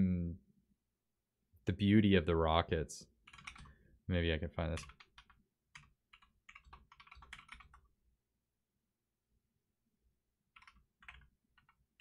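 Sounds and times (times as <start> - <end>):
typing on computer keyboard: 3.2 - 3.8, 4.8 - 7.9, 10.5 - 12.0.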